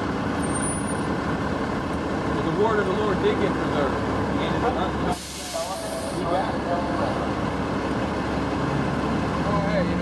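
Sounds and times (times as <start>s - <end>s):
bus idling: 0.0s - 10.0s.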